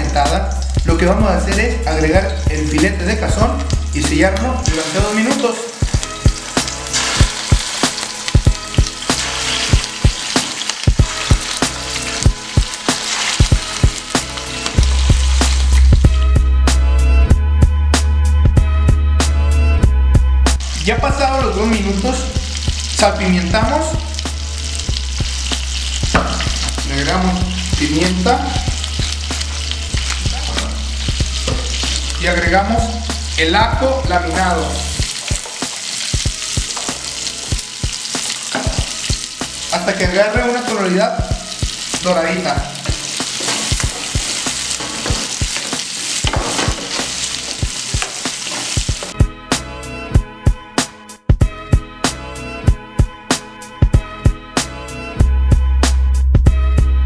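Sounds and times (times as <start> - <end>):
fish frying in oil: 0.0 - 16.2, 20.6 - 49.2
music with drum beat: 0.1 - 19.3, 20.1 - 34.4, 35.0 - 40.2, 41.2 - 54.8
wooden spoon scraping pan: 42.8 - 49.2.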